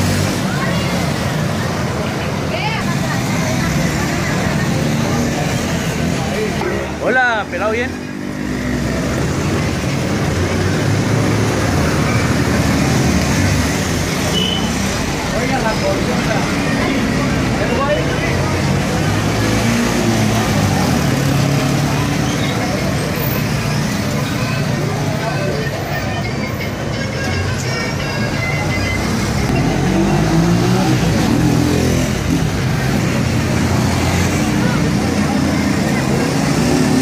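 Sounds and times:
crowd talking: 0.0s - 37.0s
motorcycles and cars passing: 0.0s - 37.0s.

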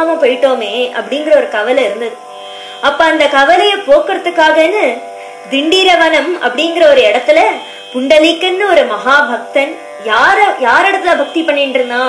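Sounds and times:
faint steady drone: 0.0s - 12.0s.

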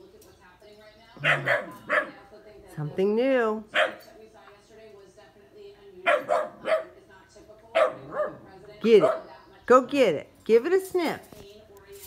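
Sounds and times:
puppy barking: 1.2s - 2.3s, 3.7s - 4.1s, 6.0s - 7.0s, 7.7s - 9.3s.

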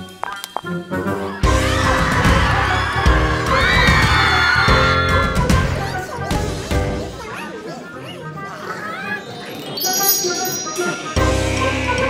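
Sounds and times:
background music: 0.0s - 12.0s
cartoon voices laughing and chattering: 4.2s - 12.0s
high steady musical tones: 8.5s - 12.0s.

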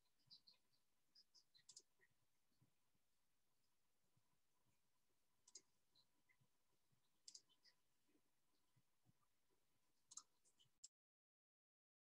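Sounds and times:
faint clicks: 0.2s - 2.8s, 4.2s - 8.2s, 10.0s - 10.9s.

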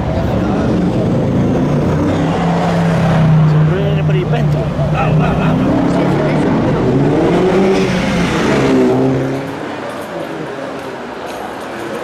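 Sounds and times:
car engine accelerating past: 4.5s - 9.8s.

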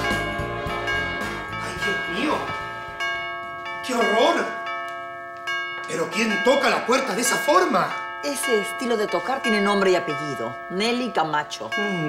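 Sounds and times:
background music: 0.0s - 4.5s
doorbell chiming: 0.0s - 12.0s.

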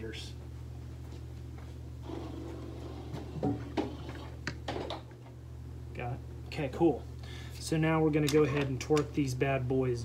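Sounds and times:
low workshop hum: 0.0s - 10.0s
footsteps: 0.4s - 1.8s.

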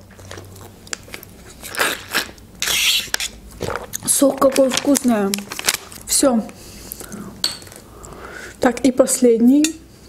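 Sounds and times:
person chewing: 0.0s - 4.1s.

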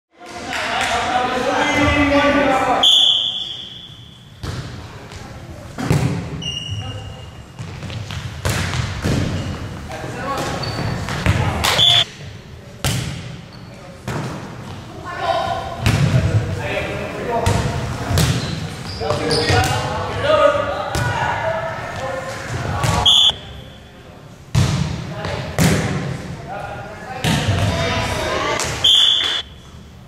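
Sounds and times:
volleyball hits echoing: 4.4s - 4.8s, 5.8s - 6.4s, 7.6s - 9.5s, 15.8s - 16.5s, 17.4s - 18.6s, 24.5s - 26.1s, 27.2s - 27.9s.

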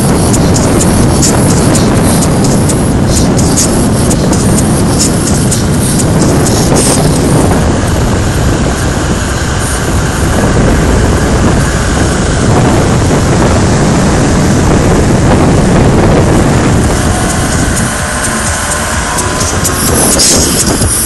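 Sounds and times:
car road and engine noise: 0.0s - 21.0s
waterfall roaring: 0.0s - 21.0s.

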